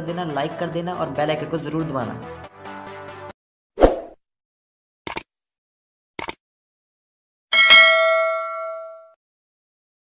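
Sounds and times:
bell-like ding: 7.5 - 9.2.

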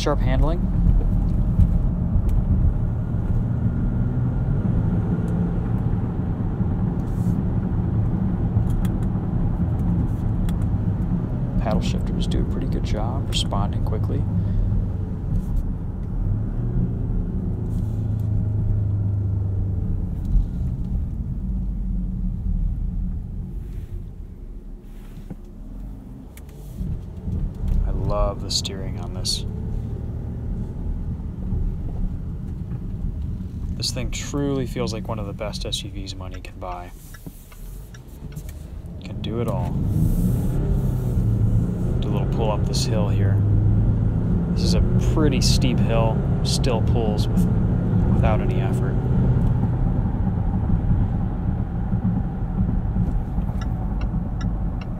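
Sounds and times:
engine drone: 0.0 - 54.9
tyre and road noise: 0.0 - 54.9.

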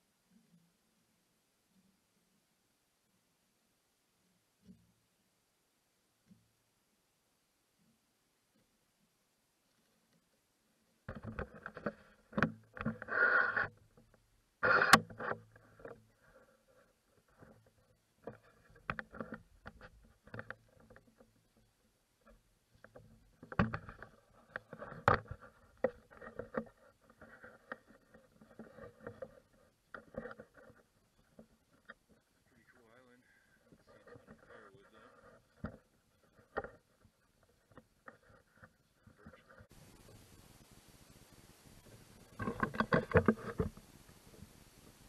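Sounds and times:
rustles and knocks: 11.0 - 32.7, 33.6 - 40.6, 41.6 - 45.0.

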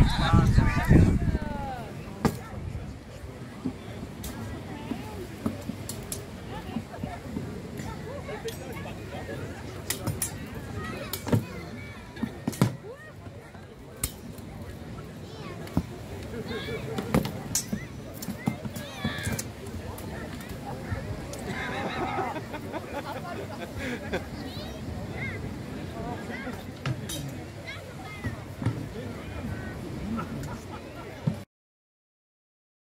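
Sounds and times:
voices talking over one another: 0.0 - 2.8
murmur of voices: 0.0 - 31.5.

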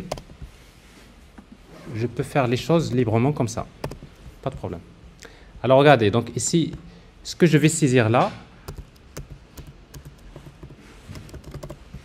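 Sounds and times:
fast typing on a keyboard: 3.8 - 4.0, 8.7 - 12.0.

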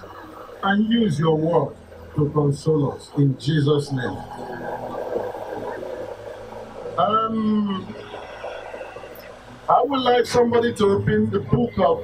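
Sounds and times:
microphone hiss and hum: 0.0 - 12.0.

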